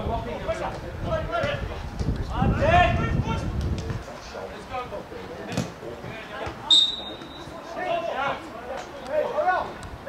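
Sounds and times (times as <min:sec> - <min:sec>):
voices calling out: 0:05.1 - 0:09.8.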